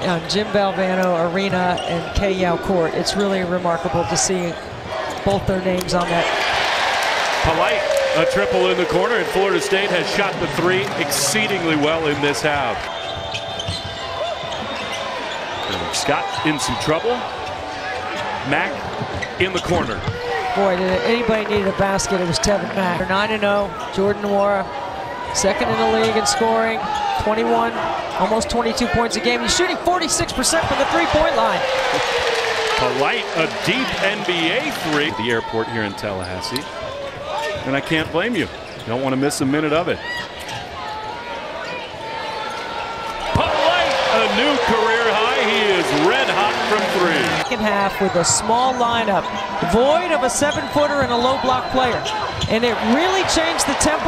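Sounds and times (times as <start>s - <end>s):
crowd din: 0.0s - 36.2s, 40.7s - 54.0s
arena background noise: 0.0s - 54.0s.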